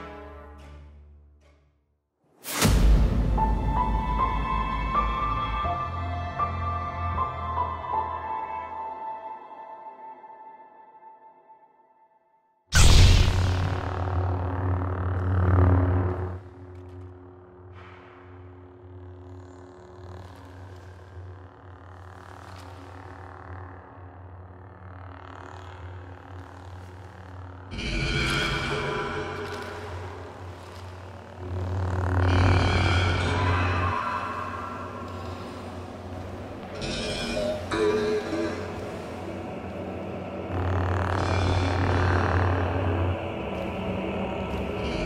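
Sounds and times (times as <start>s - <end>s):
dramatic orchestral drone: 0.0s - 1.6s, 2.6s - 11.5s, 12.8s - 45.0s.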